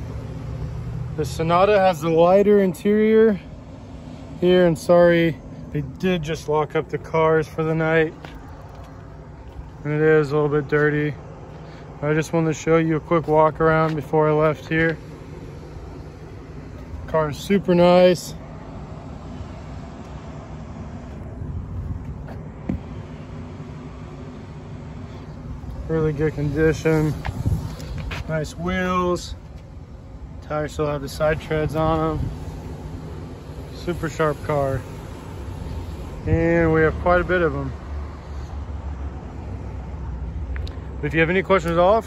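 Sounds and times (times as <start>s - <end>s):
low outdoor rumble: 0.0s - 42.0s.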